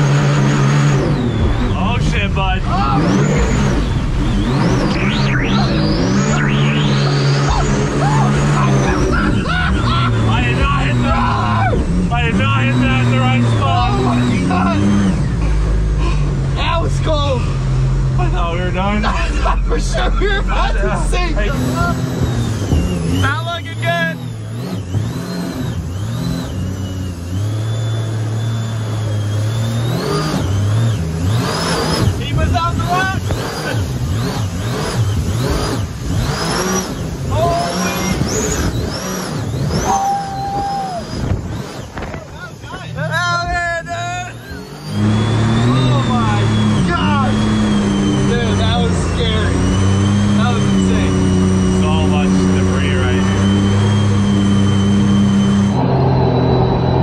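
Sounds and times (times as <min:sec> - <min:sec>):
jet boat engines running hard: 0:00.0 - 0:57.0
rushing water and spray: 0:24.6 - 0:42.5.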